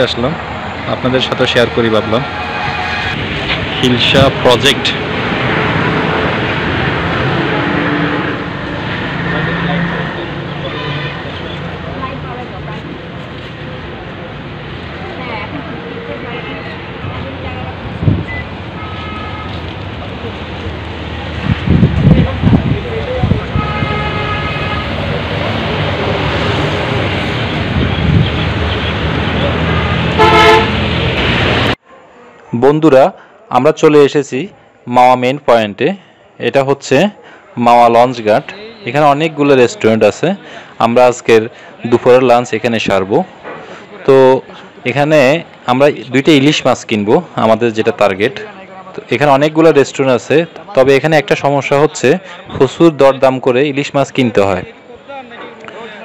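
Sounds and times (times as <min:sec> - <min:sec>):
outdoor traffic noise: 0:00.0 - 0:56.0
vehicle horn honk: 0:01.9 - 0:03.9, 0:09.3 - 0:11.5, 0:18.8 - 0:19.6, 0:23.5 - 0:25.0, 0:29.6 - 0:30.8.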